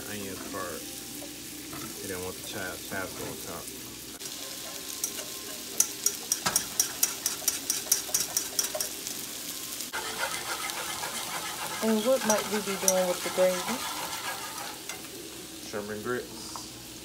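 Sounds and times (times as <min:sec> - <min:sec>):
fish sizzling in frying pan: 0:00.0 - 0:17.0
whisk clicking against metal pan: 0:04.6 - 0:08.9, 0:10.0 - 0:14.8.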